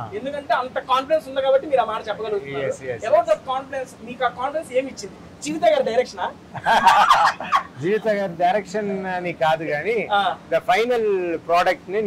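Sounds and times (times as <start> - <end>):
men laughing heartily: 6.5 - 7.8.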